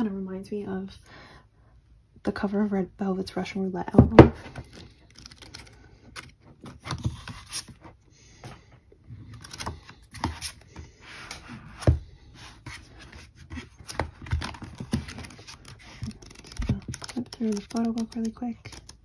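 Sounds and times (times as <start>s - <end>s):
pages flipping and paper rustles: 4.4s - 7.9s, 9.3s - 19.0s.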